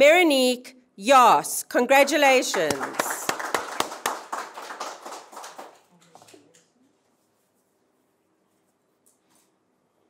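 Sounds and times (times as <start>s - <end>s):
small group applauding: 1.9s - 6.8s.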